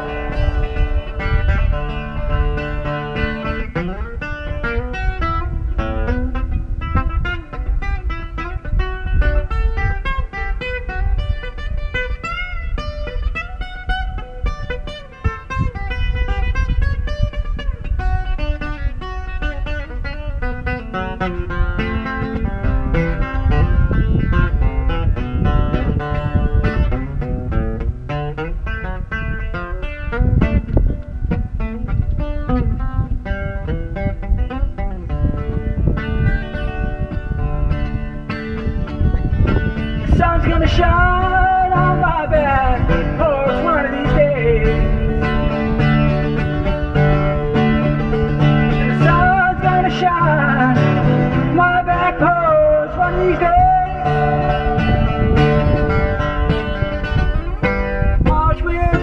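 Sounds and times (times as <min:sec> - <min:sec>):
amplified acoustic guitar: 0:00.0 - 0:59.0.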